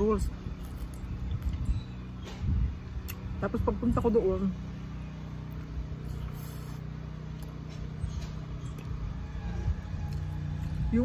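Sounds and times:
wind buffeting microphone: 0.0 - 4.3.

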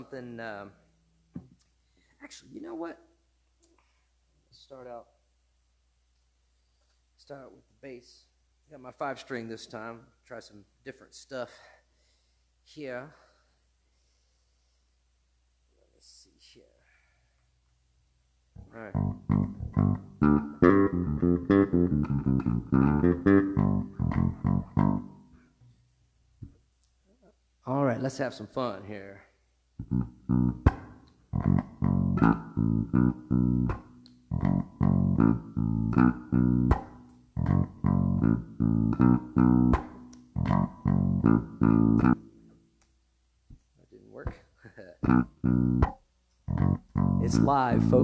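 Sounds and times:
electric bass plucked notes: 18.6 - 25.4, 29.8 - 42.4, 45.0 - 48.0.

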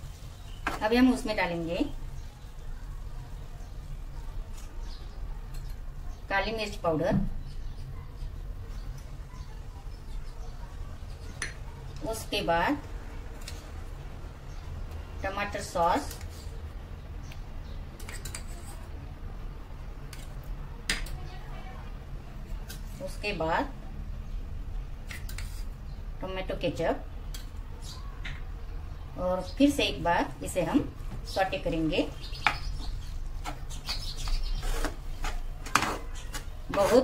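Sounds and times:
spatula scraping vegetables in pan: 17.9 - 18.9, 25.1 - 25.8, 32.8 - 37.0.

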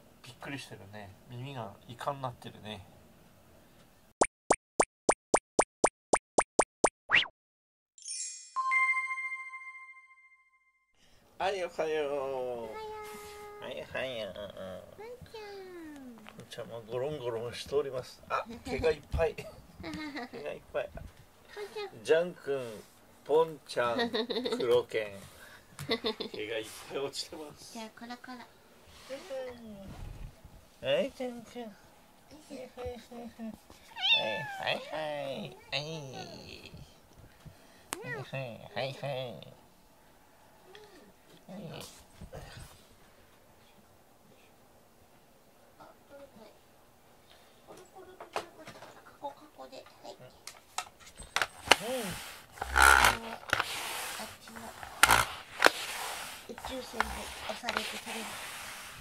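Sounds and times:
cartoon pops rising in pitch: 4.2 - 7.3
cat meowing: 33.9 - 35.0.

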